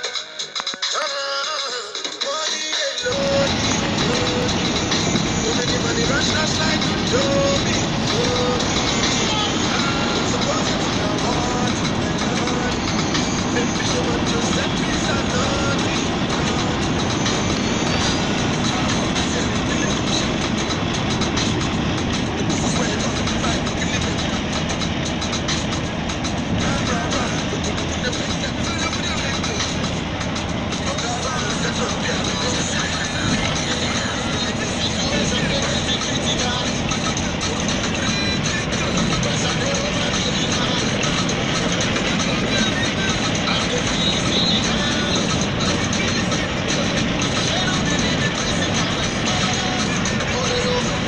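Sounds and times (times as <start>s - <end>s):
highway traffic noise: 0.0s - 51.0s
road and wind noise in car: 3.0s - 51.0s.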